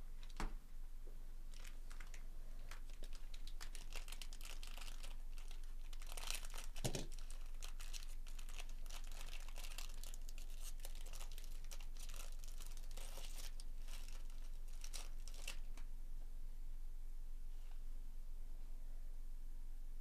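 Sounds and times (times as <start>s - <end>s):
wrapper crinkling and tearing: 1.5s - 15.8s.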